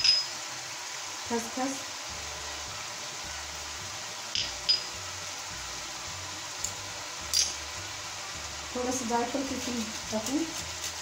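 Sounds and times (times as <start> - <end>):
steady background hiss: 0.0 - 11.0
kitchen utensils clinking: 7.3 - 7.6.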